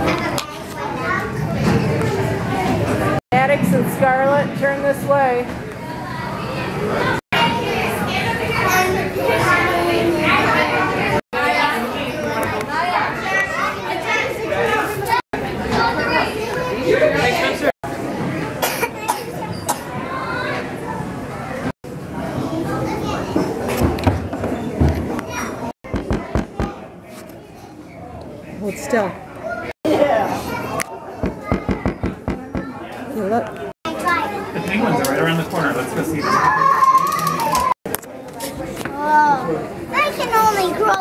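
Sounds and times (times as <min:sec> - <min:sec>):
murmur of indoor crowd: 0:00.0 - 0:41.0
children chattering while playing: 0:05.8 - 0:17.6, 0:18.3 - 0:21.6, 0:25.2 - 0:35.0, 0:38.6 - 0:41.0
girl coughing: 0:18.6 - 0:19.9.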